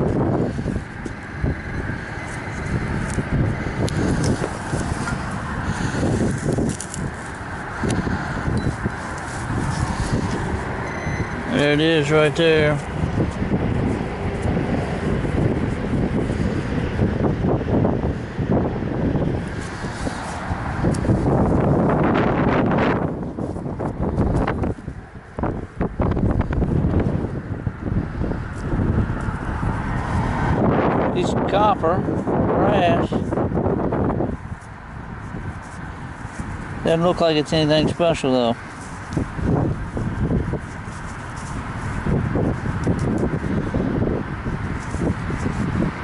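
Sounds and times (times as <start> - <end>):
hand digging and scraping soil: 0.0 - 17.0, 19.2 - 27.4, 28.1 - 46.0
wind rumbling on microphone: 0.0 - 46.0.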